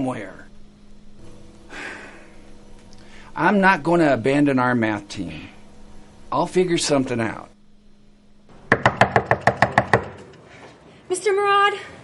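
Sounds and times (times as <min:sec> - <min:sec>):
knuckles rapping on door: 0:08.7 - 0:10.2.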